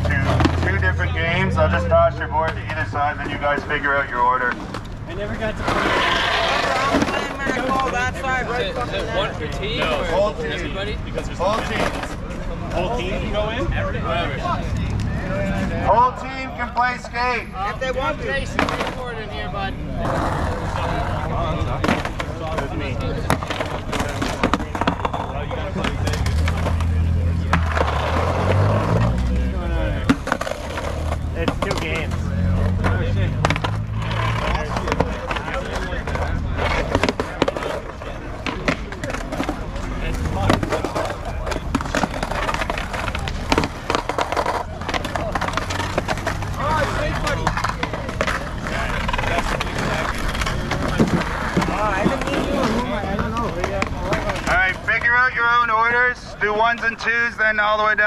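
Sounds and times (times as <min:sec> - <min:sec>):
skateboard decks clacking: 0:00.0 - 0:01.0, 0:02.4 - 0:10.6, 0:11.2 - 0:13.2, 0:18.4 - 0:19.3, 0:19.9 - 0:55.1
skateboard wheels rolling on asphalt: 0:00.0 - 0:16.4, 0:17.2 - 0:56.1.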